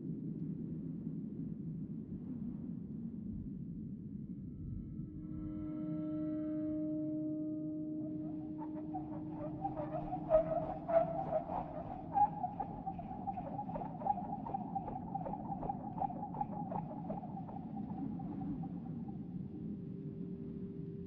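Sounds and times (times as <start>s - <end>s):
wavering tone: 7.5s - 19.8s
low drone: 7.9s - 20.5s.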